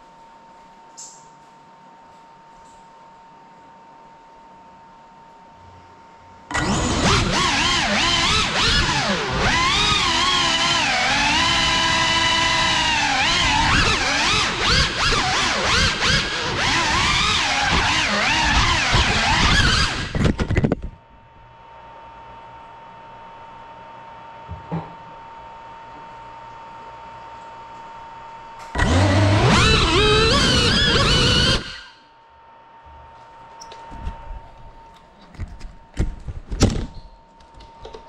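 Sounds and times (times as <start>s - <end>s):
drone motors whining: 6.5s - 20.4s, 28.7s - 32.0s.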